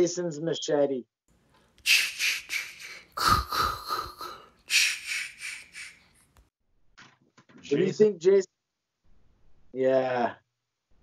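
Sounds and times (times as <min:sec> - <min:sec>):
breathy whispered bursts: 0:01.8 - 0:06.3.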